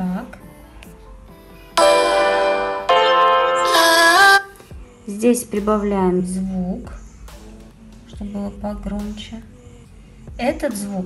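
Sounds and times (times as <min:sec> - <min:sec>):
song playing from phone: 0:00.4 - 0:05.7.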